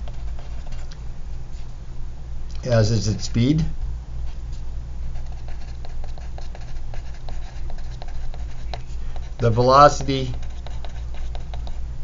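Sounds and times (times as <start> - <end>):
pencil scratching on paper: 5.2 - 11.8.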